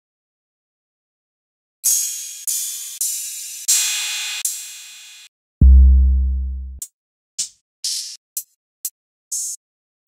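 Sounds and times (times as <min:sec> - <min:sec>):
drum machine cymbal hits: 0:05.6 - 0:06.8.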